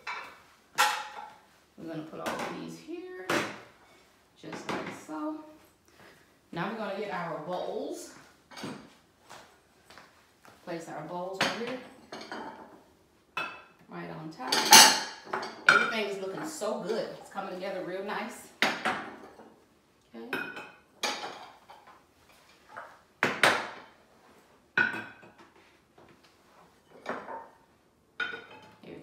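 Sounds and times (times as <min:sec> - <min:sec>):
handling sounds of bowls: 0:20.4 - 0:28.9
bowls clinking on plates: 0:24.8 - 0:25.4, 0:28.2 - 0:28.8.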